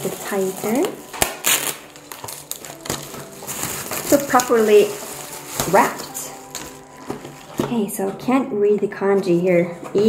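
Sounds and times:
bubble wrap crinkling: 0:00.0 - 0:08.0.

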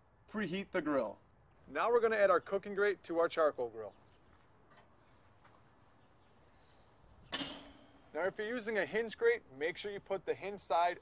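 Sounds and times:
metal grate clattering on grill: 0:07.3 - 0:08.1.

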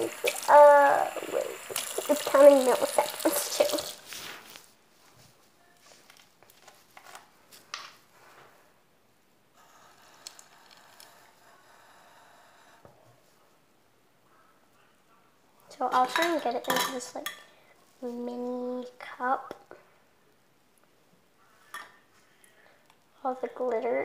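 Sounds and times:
sink tap running: 0:00.0 - 0:04.0
water running into plastic bottle: 0:00.0 - 0:04.2.

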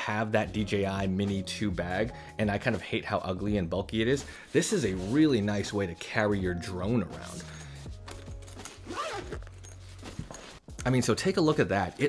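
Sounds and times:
quiet background music: 0:00.0 - 0:12.0
zipper being pulled open: 0:08.0 - 0:10.7.

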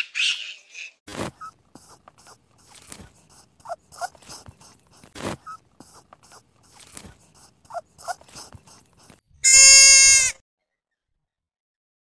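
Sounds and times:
high-pitched animal bleat: 0:09.4 - 0:10.4.

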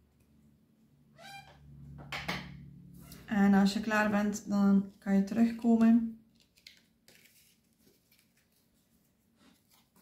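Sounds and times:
office chair squeak: 0:01.2 - 0:01.7, 0:03.0 - 0:03.3.

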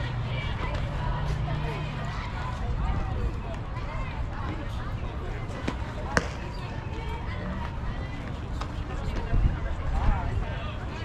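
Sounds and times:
faint chatter of people: 0:00.0 - 0:11.0
ball smacking into glove: 0:05.7 - 0:06.6.

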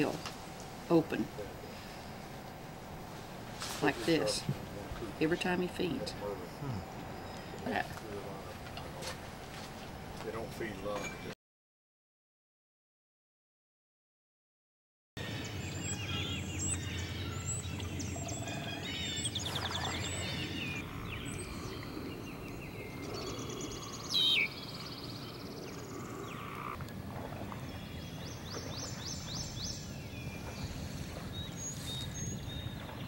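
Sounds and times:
low background noise: 0:00.0 - 0:11.3
songbirds singing and calling: 0:00.0 - 0:11.3, 0:15.2 - 0:33.0.

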